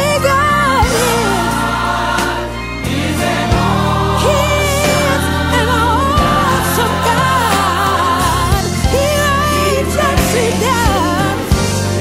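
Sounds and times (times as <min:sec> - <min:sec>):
instrumental backing with bass: 0:00.0 - 0:12.0
women's group singing gospel: 0:00.6 - 0:12.0.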